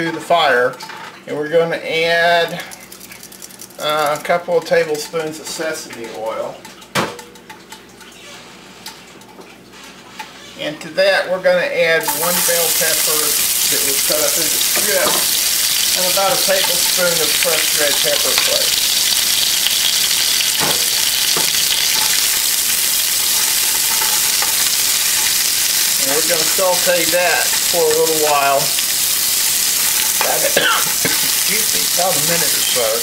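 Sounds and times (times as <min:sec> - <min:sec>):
oil heating in skillet hiss: 0:12.0 - 0:33.0.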